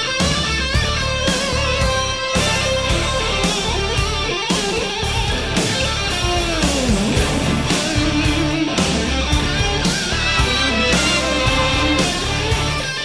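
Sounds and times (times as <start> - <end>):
bass: 0.0 - 13.0
drums: 0.0 - 13.0
electric guitar lead: 0.0 - 13.0.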